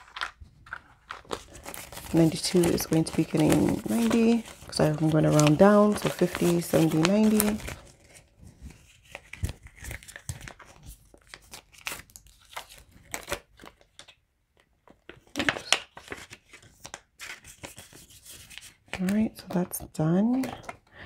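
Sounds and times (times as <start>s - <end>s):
banknotes crinkling: 0.0s - 20.8s.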